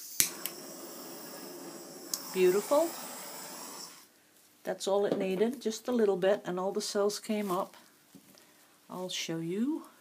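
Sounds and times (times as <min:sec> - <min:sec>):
torch flame hissing: 0:00.0 - 0:04.1
torch igniter click: 0:00.1 - 0:00.7, 0:02.0 - 0:02.7.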